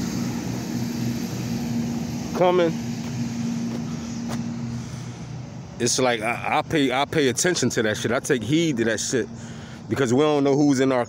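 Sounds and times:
low motor hum: 0.0s - 10.8s
outdoor noise: 0.0s - 11.0s.

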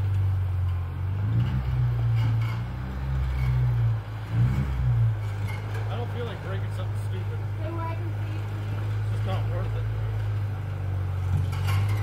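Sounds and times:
off-road vehicle engine running: 0.0s - 12.0s.

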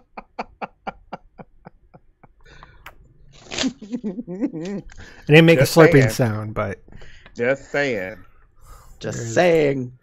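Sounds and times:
man laughing: 0.0s - 2.4s, 3.6s - 4.9s.

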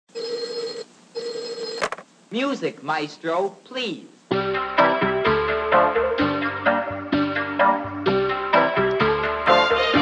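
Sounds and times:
electronic ringing tone: 0.1s - 1.9s.

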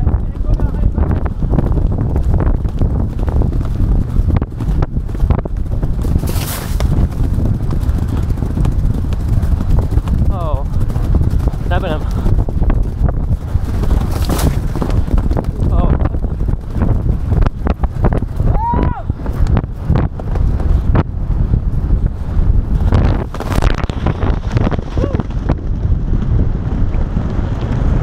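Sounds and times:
horse hoofbeats on turf: 0.0s - 18.4s
wind buffeting microphone: 0.0s - 28.0s.

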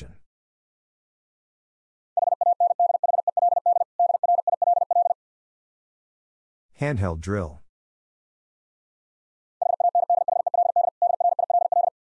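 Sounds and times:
morse code beeps: 2.2s - 5.2s, 9.6s - 12.0s.

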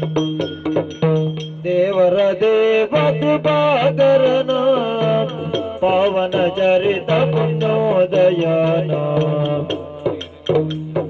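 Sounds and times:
quick metallic strikes: 0.0s - 2.2s.

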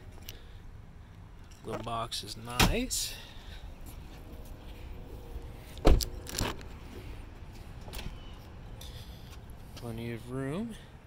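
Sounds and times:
car door thump: 5.8s - 6.1s.

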